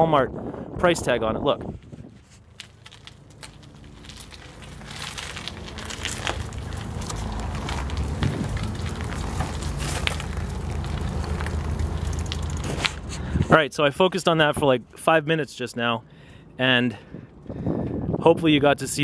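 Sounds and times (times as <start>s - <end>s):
wind on microphone: 0.0s - 2.3s, 17.0s - 18.6s
bike tyres crackling over debris: 2.0s - 13.6s.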